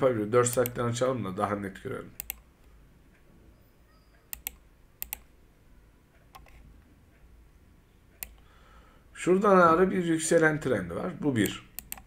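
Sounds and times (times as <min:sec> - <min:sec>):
computer mouse clicking: 0:00.5 - 0:00.8, 0:02.2 - 0:02.8, 0:04.2 - 0:05.3, 0:06.2 - 0:06.6, 0:08.1 - 0:08.5, 0:11.4 - 0:12.0.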